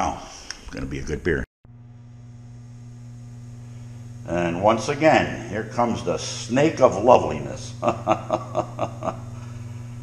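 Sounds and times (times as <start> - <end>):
steady low hum: 0.7 - 10.0
man chuckling: 7.8 - 9.7.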